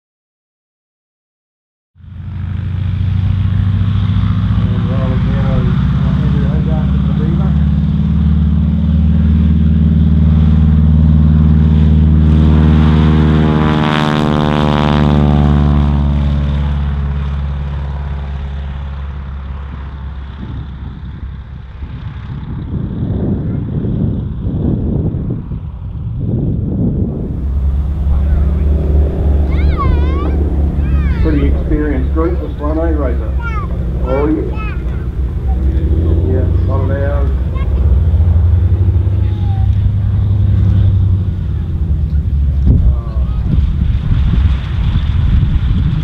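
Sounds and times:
propeller aircraft engine: 0:02.0 - 0:46.0.

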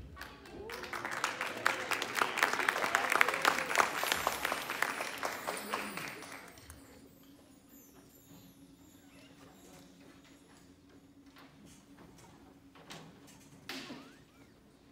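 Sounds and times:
audience applauding: 0:00.2 - 0:06.9.

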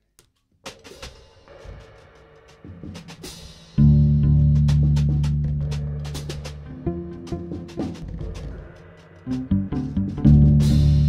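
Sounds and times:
drum and cymbal strikes: 0:00.7 - 0:11.0.

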